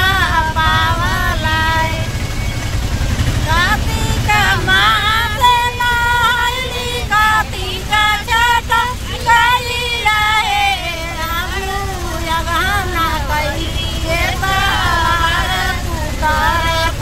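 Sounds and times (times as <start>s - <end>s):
engine and road rumble: 0.0s - 17.0s
women singing: 0.0s - 17.0s.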